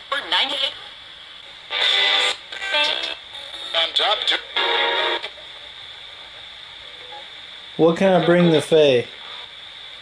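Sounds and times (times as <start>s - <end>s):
static hiss: 0.0s - 10.0s.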